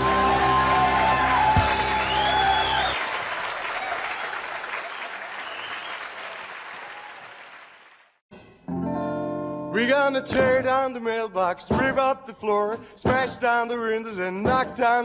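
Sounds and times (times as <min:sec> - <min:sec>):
rock song starting: 0:00.0 - 0:02.9
rock band held chord: 0:00.0 - 0:03.0
audience applause: 0:00.0 - 0:08.2.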